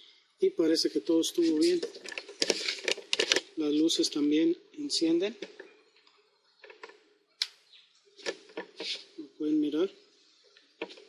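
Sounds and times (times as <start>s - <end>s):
faint handling sounds: 1.3s - 3.6s, 8.0s - 9.2s.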